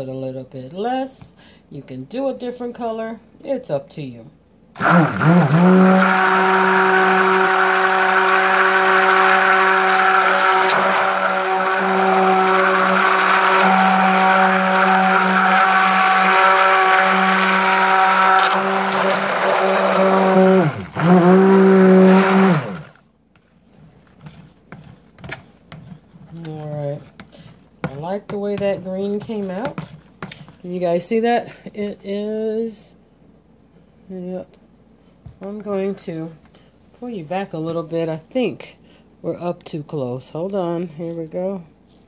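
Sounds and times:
stick blender motor hum: 4.8s - 30.6s.

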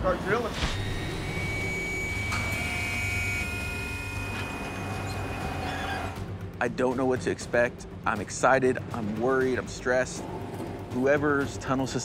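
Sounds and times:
high drill whine: 0.4s - 6.2s
drill rig humming: 0.8s - 6.2s.

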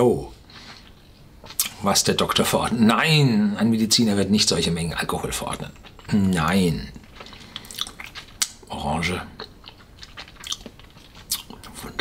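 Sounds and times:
wet lip smacks and tongue clicks: 7.0s - 8.7s, 9.4s - 12.0s.

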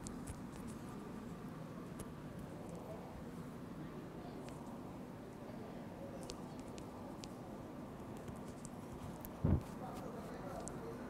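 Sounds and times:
steady background hiss: 0.0s - 11.0s
dull low thump: 9.4s - 9.7s.

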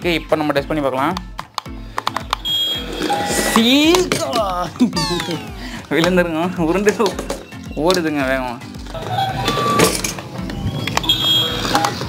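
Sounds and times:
background music with steady beat: 0.0s - 12.0s
toy robot beeps and warble: 2.4s - 3.9s, 9.0s - 12.0s.

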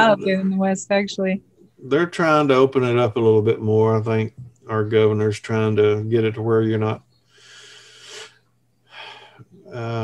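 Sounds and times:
person breathing: 7.2s - 9.5s.

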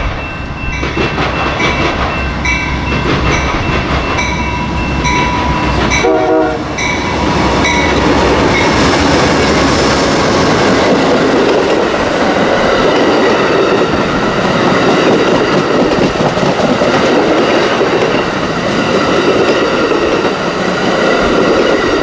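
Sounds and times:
locomotive bell ringing: 0.0s - 9.6s
diesel locomotive engines rumbling: 0.0s - 22.0s
train wheels on rails: 0.0s - 22.0s
train horn blast: 5.8s - 7.0s.

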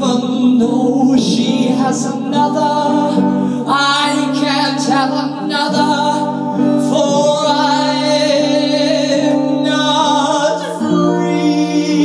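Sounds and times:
held sung notes with instruments: 0.0s - 12.0s.

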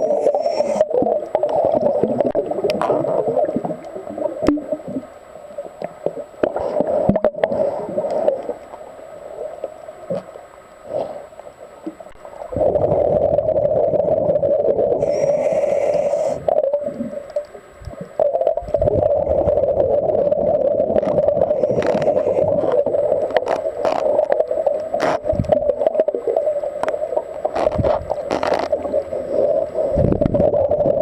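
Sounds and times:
muffled underwater bubbling breathing: 0.0s - 5.1s, 6.4s - 8.7s, 12.4s - 31.0s.

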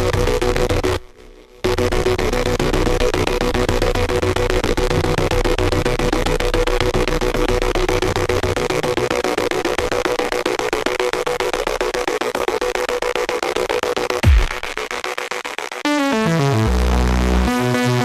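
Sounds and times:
experimental electronic music: 0.0s - 18.0s
low bass layer: 1.6s - 10.1s, 16.4s - 18.0s.

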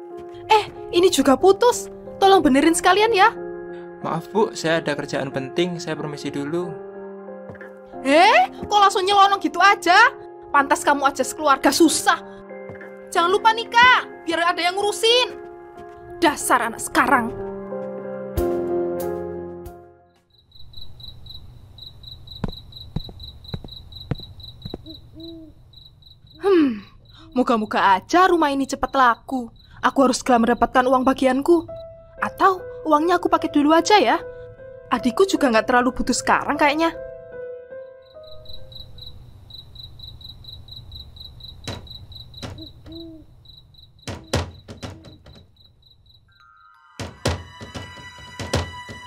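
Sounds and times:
crickets chirping: 20.1s - 32.7s, 37.8s - 49.0s
owl hooting: 24.6s - 25.7s, 42.2s - 43.4s.

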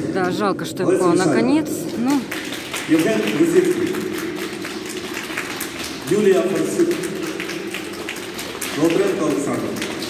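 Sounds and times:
scattered applause: 2.0s - 10.0s.

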